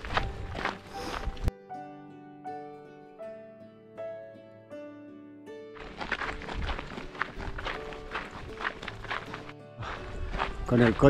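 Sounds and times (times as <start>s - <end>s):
footsteps on gravel: 0.0s - 1.5s, 5.7s - 11.0s
background music: 0.0s - 11.0s.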